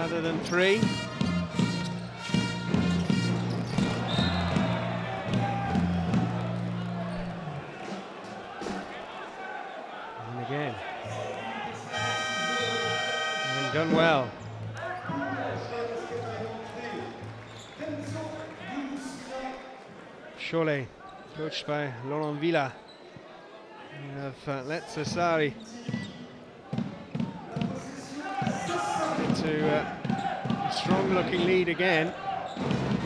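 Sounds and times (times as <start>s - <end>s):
music over arena speakers: 0.0s - 8.4s
crowd noise: 0.0s - 33.0s
long horn: 11.9s - 13.9s.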